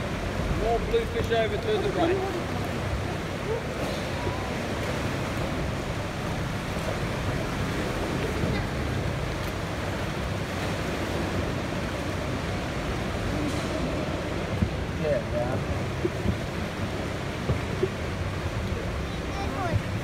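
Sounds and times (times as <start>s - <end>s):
boat engine: 0.0s - 20.0s
rushing water: 0.0s - 20.0s.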